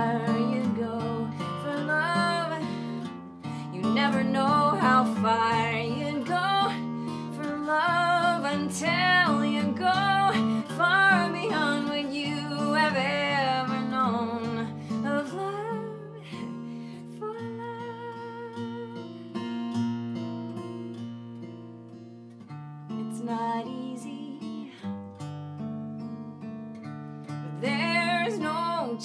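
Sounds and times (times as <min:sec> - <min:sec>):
woman singing with vibrato: 0:00.0 - 0:02.8, 0:03.7 - 0:16.5, 0:17.1 - 0:19.2, 0:23.1 - 0:24.8, 0:27.6 - 0:29.0
acoustic guitar: 0:00.0 - 0:29.0.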